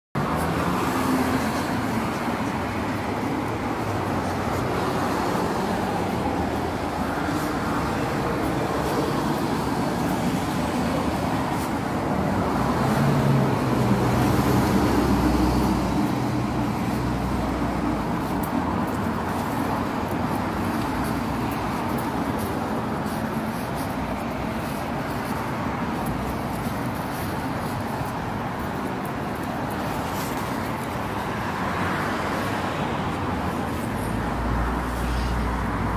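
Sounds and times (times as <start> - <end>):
passing cars: 0.2 - 35.9.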